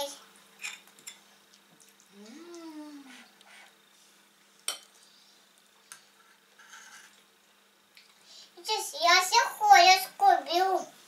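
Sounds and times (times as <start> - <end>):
person humming: 2.1 - 3.3.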